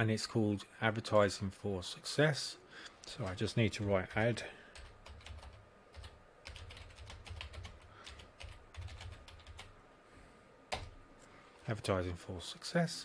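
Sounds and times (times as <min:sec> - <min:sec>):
keyboard typing: 0:04.1 - 0:09.7, 0:10.7 - 0:11.0.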